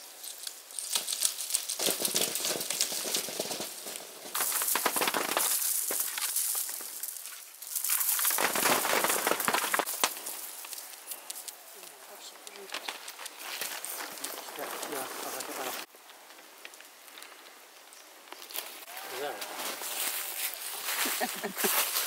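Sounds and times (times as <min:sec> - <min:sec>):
pole beating tree branches: 0:00.8 - 0:15.9.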